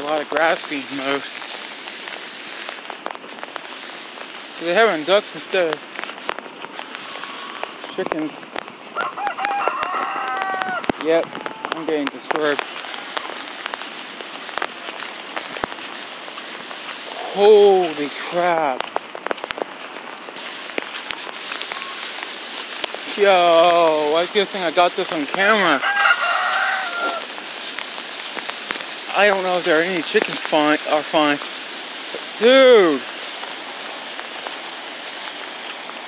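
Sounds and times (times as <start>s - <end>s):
water hissing: 0.2s - 2.9s
rooster crowing: 9.0s - 11.8s, 25.8s - 27.3s.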